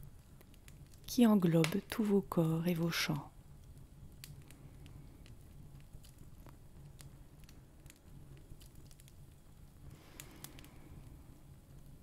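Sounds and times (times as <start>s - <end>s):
low steady hum: 0.0s - 12.0s
faint clicks: 10.1s - 11.2s.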